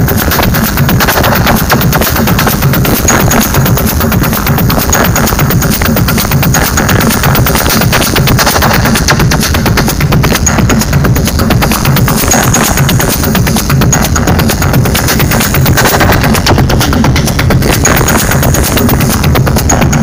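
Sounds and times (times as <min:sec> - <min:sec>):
techno music: 0:00.0 - 0:20.0.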